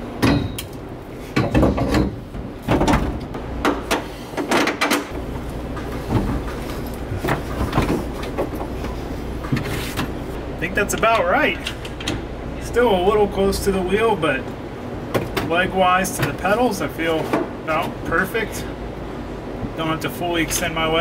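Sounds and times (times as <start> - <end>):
steady low hum: 0.0 - 21.0
seat creaking and bumping: 0.2 - 10.4
seat knocking and scraping on metal: 1.3 - 10.3.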